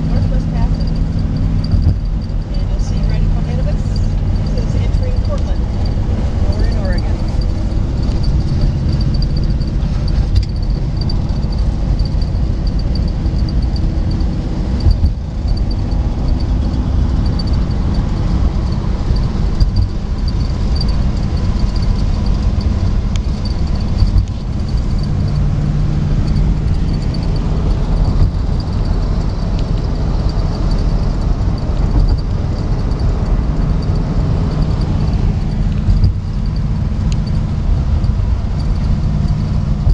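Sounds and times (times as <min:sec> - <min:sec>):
car engine and road noise: 0:00.0 - 0:39.9.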